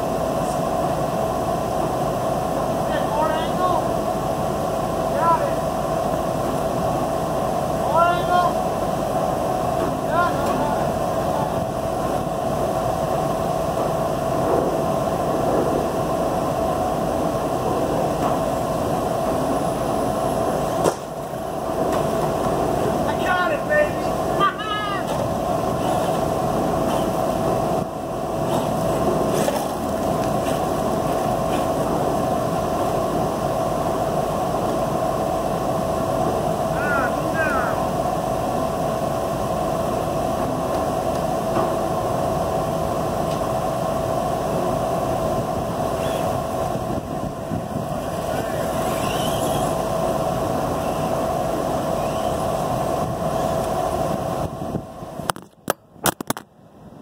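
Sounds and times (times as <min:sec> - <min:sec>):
machinery hum: 0:00.0 - 0:57.0
wind: 0:00.0 - 0:57.0
rising whines: 0:47.6 - 0:54.5.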